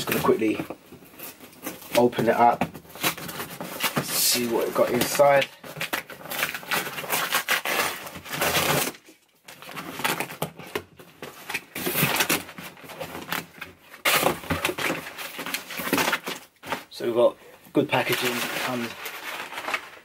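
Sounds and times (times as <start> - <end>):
tape tearing: 0.0 - 17.0
cardboard and paper rustling: 0.0 - 20.0.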